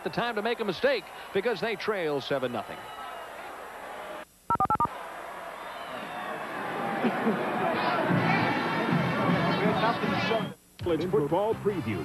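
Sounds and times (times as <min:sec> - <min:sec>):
stadium crowd noise: 0:00.0 - 0:10.6
touch-tone beeps: 0:04.5 - 0:04.9
crowd chatter: 0:06.0 - 0:10.6.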